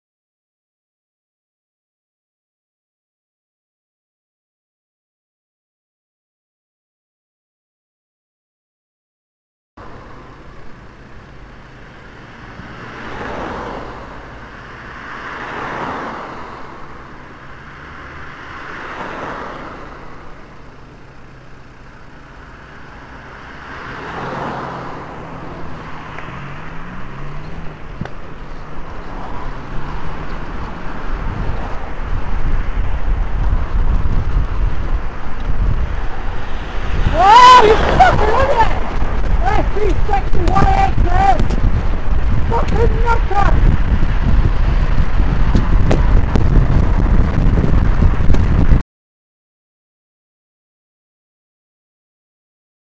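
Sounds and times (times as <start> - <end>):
car engine revving: 9.8 - 48.7
cars passing: 9.8 - 48.8
wind rumble on microphone: 25.5 - 48.8.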